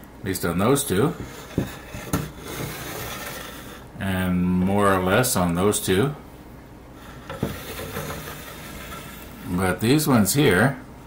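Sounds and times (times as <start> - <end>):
wooden boards rubbing: 1.1 - 3.8, 7.0 - 9.6.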